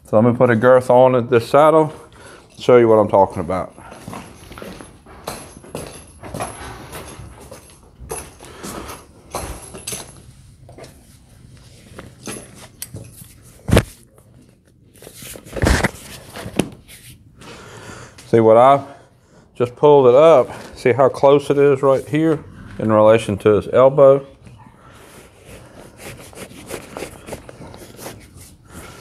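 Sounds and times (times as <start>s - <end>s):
metal rings and buckles clinking: 2.4s - 11.0s, 12.0s - 13.5s
leather rustling: 25.2s - 29.0s.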